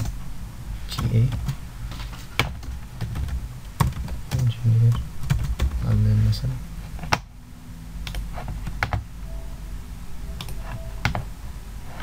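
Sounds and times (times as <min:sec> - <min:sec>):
low background hum: 0:00.0 - 0:12.0
keyboard and mouse clicks: 0:08.1 - 0:09.1, 0:10.4 - 0:11.3.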